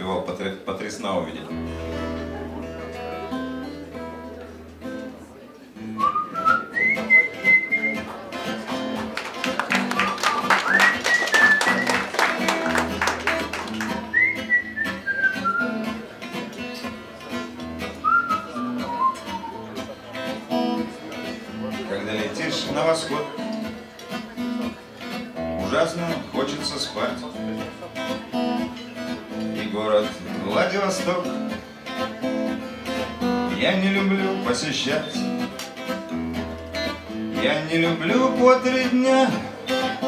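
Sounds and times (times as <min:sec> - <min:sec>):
acoustic guitar: 0:00.0 - 0:40.0
person whistling a melody: 0:06.0 - 0:08.0, 0:09.9 - 0:12.1, 0:14.1 - 0:15.8, 0:18.0 - 0:19.7.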